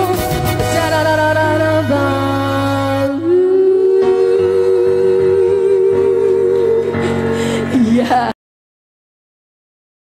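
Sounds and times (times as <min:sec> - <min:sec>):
soft band accompaniment: 0:00.0 - 0:08.3
woman singing long note: 0:02.3 - 0:07.0.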